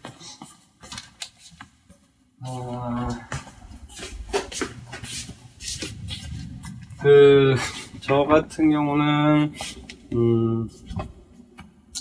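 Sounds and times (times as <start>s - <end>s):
footsteps and shuffling: 0.0s - 11.8s.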